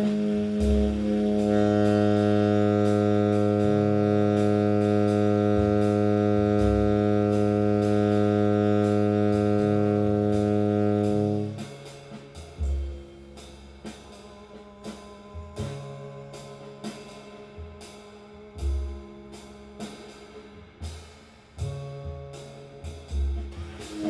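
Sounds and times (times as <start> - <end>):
drums with light cymbals: 0.0 - 24.0
plucked double bass: 0.0 - 24.0
tenor saxophone long low tone: 0.0 - 24.0.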